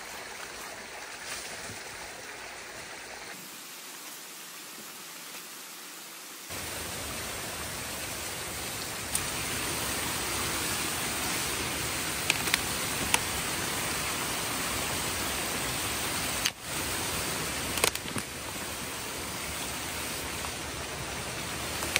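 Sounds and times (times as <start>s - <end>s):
water rushing through dam breach: 6.5s - 21.9s.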